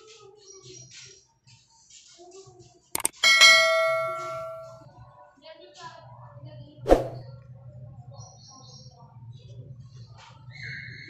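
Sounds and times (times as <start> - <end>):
sharp click: 3.0 - 3.2
bell ding: 3.0 - 4.8.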